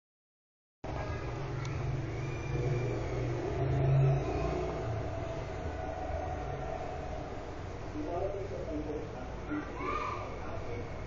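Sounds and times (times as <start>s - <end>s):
low mechanical rumble with hum: 0.8s - 11.0s.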